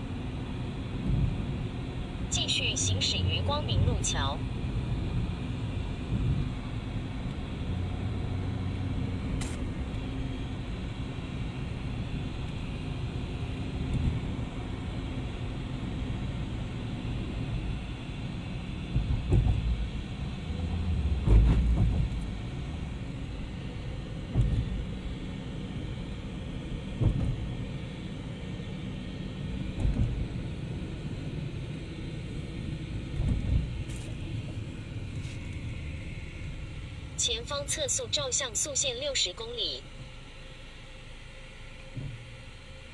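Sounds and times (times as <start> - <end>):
car tyres and engine rumble: 0.0 - 42.9.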